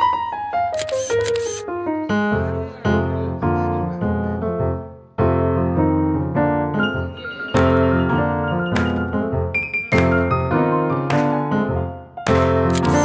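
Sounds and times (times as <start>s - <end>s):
piano music: 0.0s - 13.0s
camera shutter clicks: 0.8s - 1.6s, 12.7s - 13.0s.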